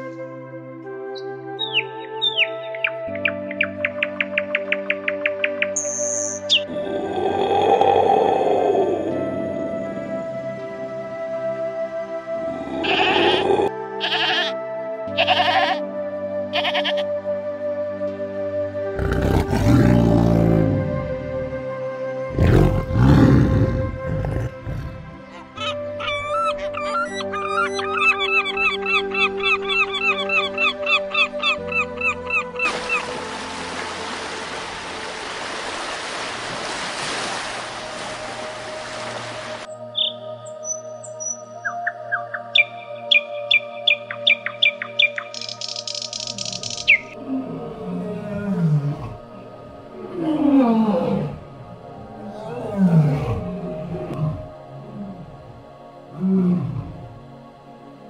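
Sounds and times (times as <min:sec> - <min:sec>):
background music: 0:00.0 - 0:58.0
falling animal calls: 0:12.4 - 0:14.5, 0:22.4 - 0:33.1
low animal call: 0:12.4 - 0:14.5
rapid repeated chirps: 0:41.7 - 0:47.2.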